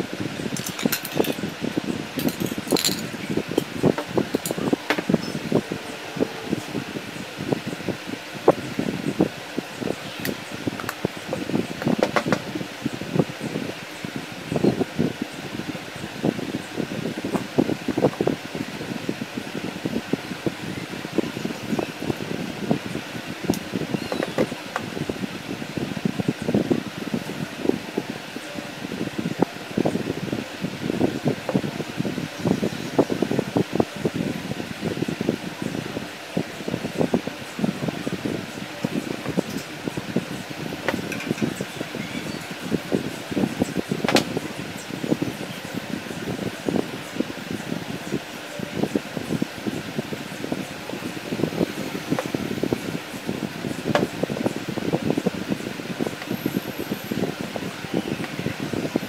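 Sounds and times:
fan-like hum: 0.0 - 59.0.

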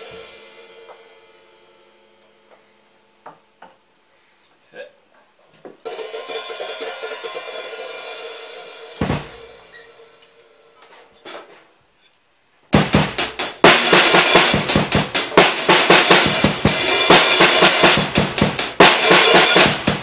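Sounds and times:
ringing drum: 5.8 - 10.2
fast drum beat: 12.7 - 20.0.

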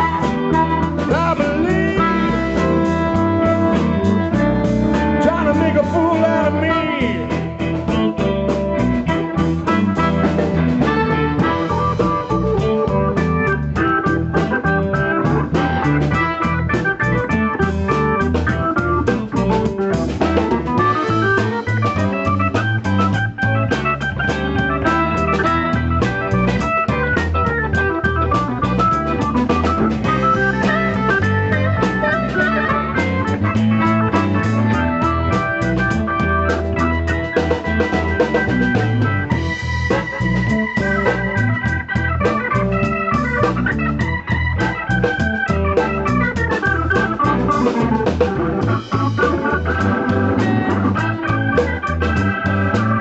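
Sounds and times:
drum kit: 0.0 - 53.0
electric guitar: 0.0 - 53.0
organ keyboard solo: 0.0 - 53.0.

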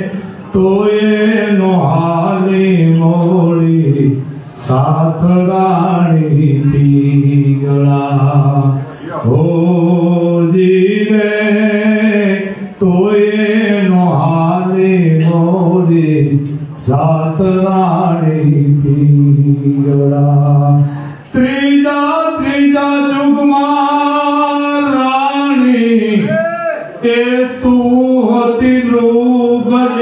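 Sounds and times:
man chanting into a microphone: 0.0 - 30.0.

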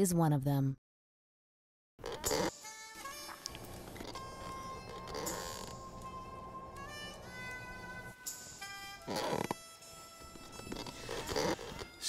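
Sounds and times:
rustling scraping movement: 10.4 - 11.9.

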